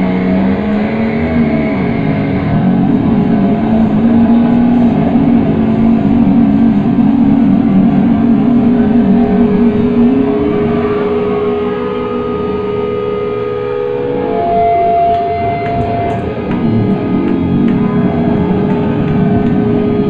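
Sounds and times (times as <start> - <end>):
distorted electric guitar feedback: 0.0 - 20.0.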